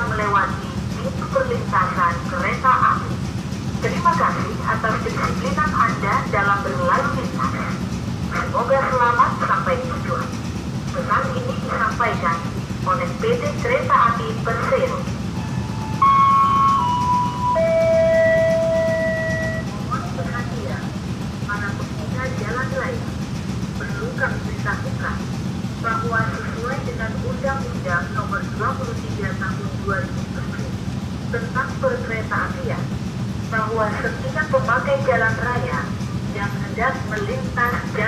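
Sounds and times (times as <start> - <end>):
recorded voice announcement: 0.0 - 15.1, 16.0 - 23.2, 23.8 - 32.9, 33.5 - 38.0
steady low hum: 0.0 - 38.0.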